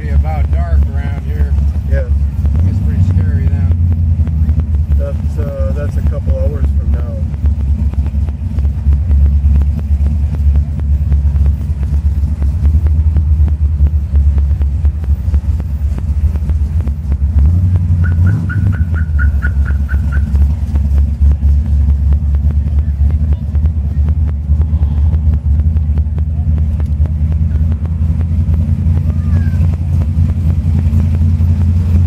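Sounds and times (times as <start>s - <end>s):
car engine low rumble: 0.0s - 32.0s.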